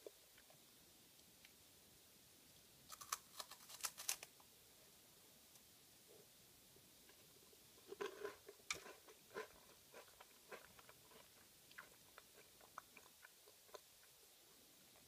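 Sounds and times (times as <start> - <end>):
crunching wafer snack: 2.9 - 4.3.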